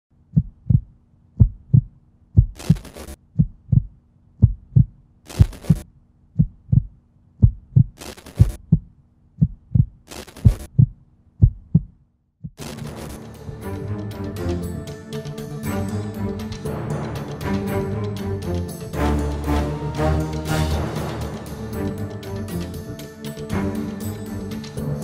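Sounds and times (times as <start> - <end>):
heartbeat thumps: 0.3 - 2.7, 3.3 - 5.8, 6.4 - 12.7.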